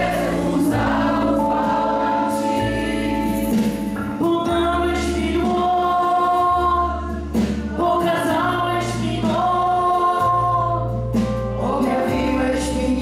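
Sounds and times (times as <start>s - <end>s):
low bass notes: 0.0s - 13.0s
worship band playing slow song: 0.0s - 13.0s.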